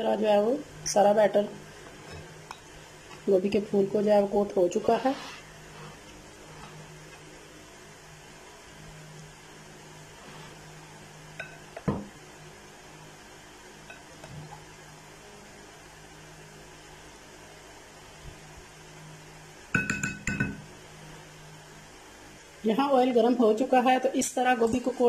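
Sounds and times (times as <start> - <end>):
faint steady hum: 0.0 - 25.0
wooden spoon knocking glass bowl: 19.8 - 20.6.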